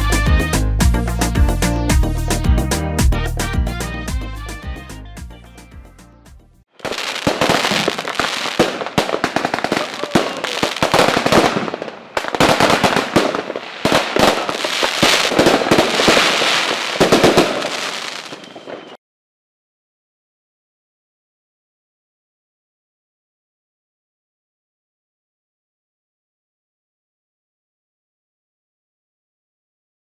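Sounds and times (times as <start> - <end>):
fireworks bangs and crackles: 6.8 - 19.0.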